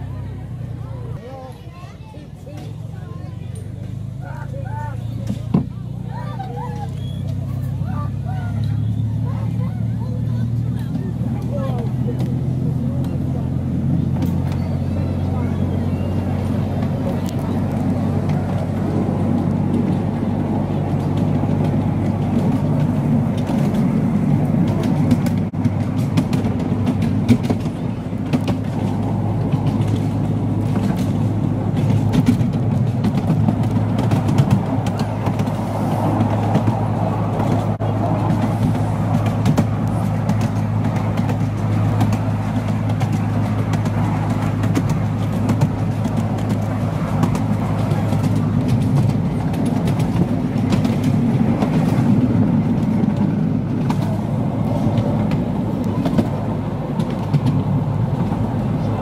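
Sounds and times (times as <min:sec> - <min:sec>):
locomotive engine running: 0:00.0 - 0:59.0
short clicks from moving train: 0:14.1 - 0:14.8, 0:16.3 - 0:59.0.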